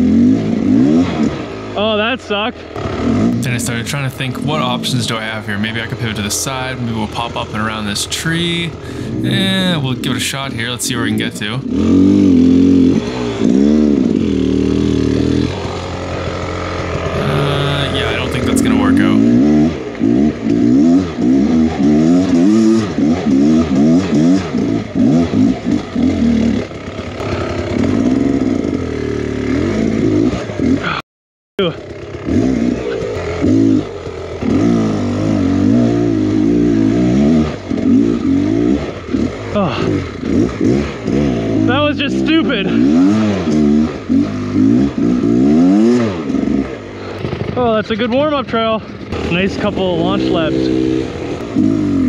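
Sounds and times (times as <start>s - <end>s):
dirt bike engine revving: 0.0s - 2.0s, 2.6s - 31.0s, 31.7s - 52.0s.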